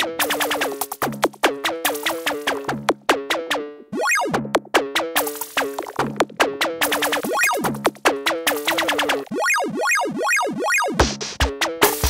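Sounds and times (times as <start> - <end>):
synth tone sweeping up and down: 3.9 - 4.4, 7.2 - 7.7, 9.2 - 11.0
synth blips dropping in pitch: 3.9 - 4.5, 6.9 - 7.7, 8.8 - 11.0.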